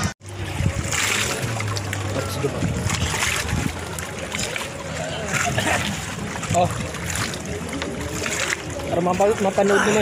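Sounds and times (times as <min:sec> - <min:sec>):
seawater splashing and lapping: 0:00.0 - 0:10.0.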